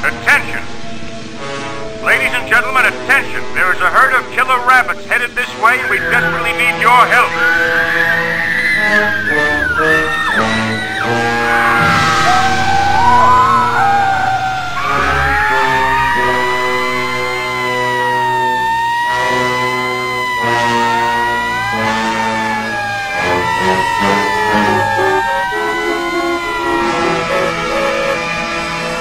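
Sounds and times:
background music with held chords: 0:00.6 - 0:29.0
siren wailing: 0:05.6 - 0:29.0.

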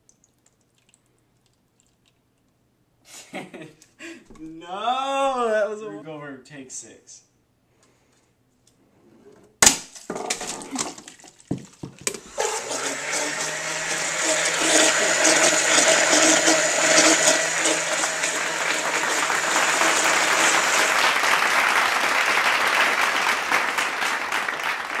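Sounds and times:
electric blender running: 0:12.2 - 0:21.2.

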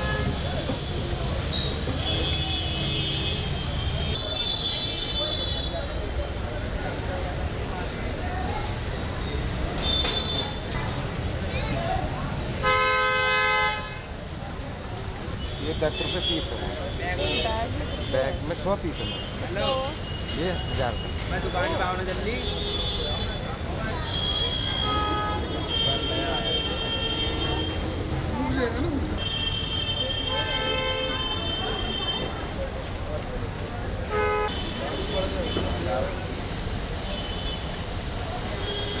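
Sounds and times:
vehicle horns honking: 0:00.0 - 0:00.5, 0:02.0 - 0:05.8, 0:12.6 - 0:14.1, 0:22.4 - 0:27.9, 0:29.1 - 0:32.5, 0:34.0 - 0:35.9
low street rumble: 0:00.0 - 0:39.0
vehicle horn honking: 0:12.6 - 0:14.0, 0:24.1 - 0:27.8, 0:34.0 - 0:35.6.

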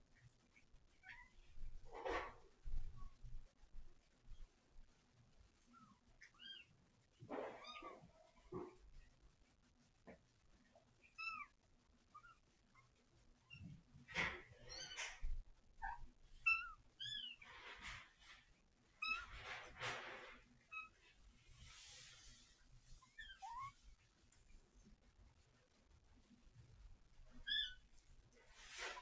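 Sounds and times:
rustling: 0:00.0 - 0:29.0.

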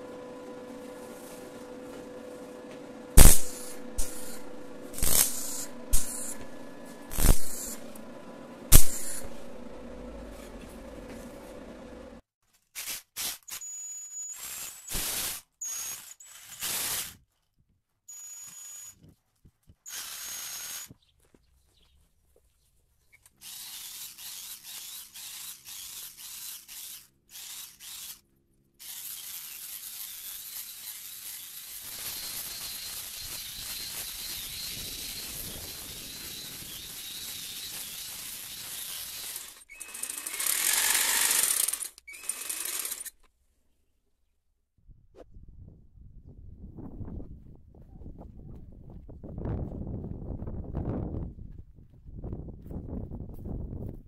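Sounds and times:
jigsaw cutting branches: 0:00.0 - 0:12.2, 0:12.8 - 0:17.2, 0:19.9 - 0:21.0, 0:23.2 - 0:43.3.

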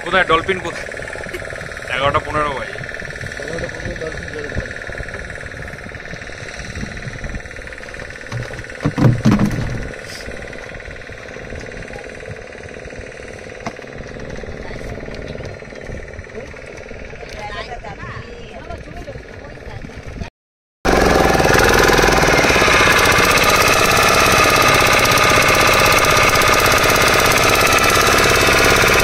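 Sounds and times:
outboard motor running: 0:00.0 - 0:20.3, 0:20.9 - 0:29.0
loud thump: 0:08.3 - 0:09.9.

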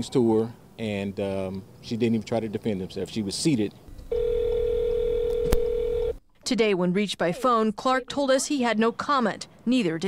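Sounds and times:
phone ringback tone: 0:04.1 - 0:06.2.

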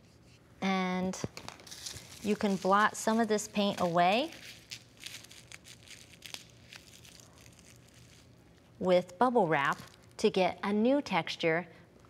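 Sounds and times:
bubble wrap crinkling: 0:01.2 - 0:08.9, 0:09.5 - 0:10.2.

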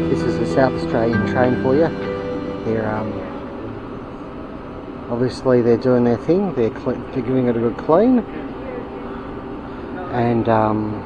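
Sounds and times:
train hum and hiss: 0:00.0 - 0:11.0.

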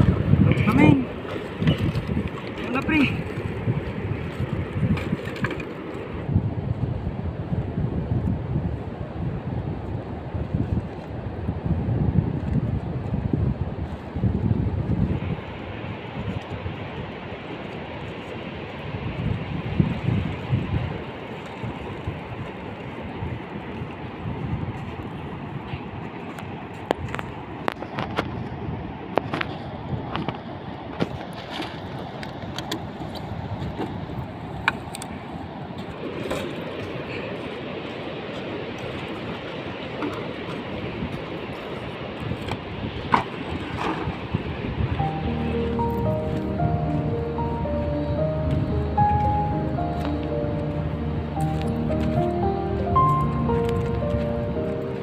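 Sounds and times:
sea rushing: 0:00.0 - 0:55.0
wind buffeting microphone: 0:00.0 - 0:55.0.

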